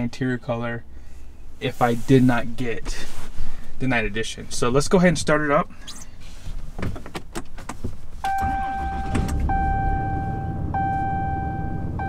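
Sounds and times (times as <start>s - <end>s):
dashboard warning chime: 8.2s - 12.0s
diesel engine idling: 8.3s - 12.0s.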